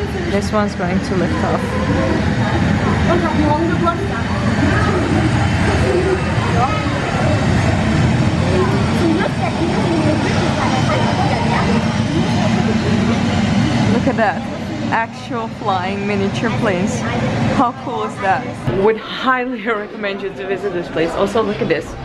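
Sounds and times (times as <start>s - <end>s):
jet take-off over loudspeakers: 0.0s - 19.0s
crowd chatter: 0.0s - 22.0s.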